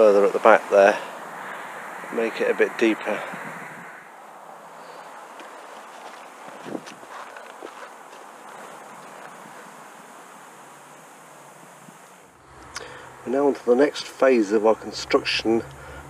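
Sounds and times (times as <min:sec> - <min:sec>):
wind hiss on microphone: 0:06.5 - 0:07.4, 0:08.3 - 0:12.3.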